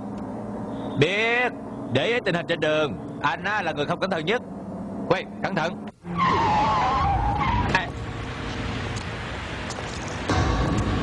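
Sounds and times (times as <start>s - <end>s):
tyres squealing in a skid: 6.1s - 7.9s.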